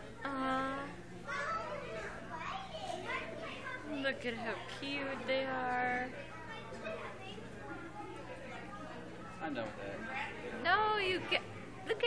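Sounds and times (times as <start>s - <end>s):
children chattering and calling out: 0.0s - 12.0s
low steady hum: 0.0s - 12.0s.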